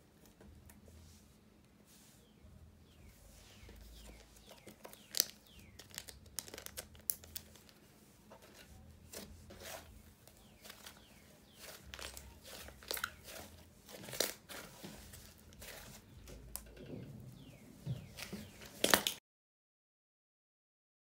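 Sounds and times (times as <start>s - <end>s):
hands squishing slime: 3.6s - 7.8s, 9.1s - 16.6s.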